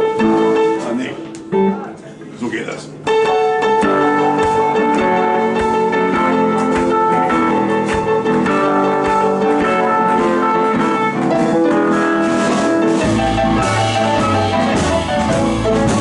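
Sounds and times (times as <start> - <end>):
upright piano playing blues: 0.0 - 16.0.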